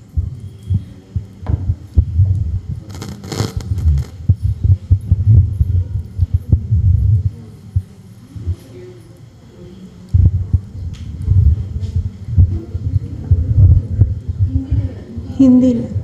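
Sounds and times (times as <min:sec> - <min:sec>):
microphone handling thumps: 0:01.4 - 0:07.3
rubbing rustle on microphone: 0:02.5 - 0:05.4.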